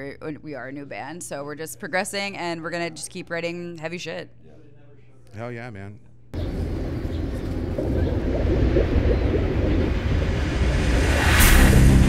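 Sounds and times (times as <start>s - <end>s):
deep steady rumble: 6.4s - 12.0s
sharp whoosh: 8.2s - 12.0s.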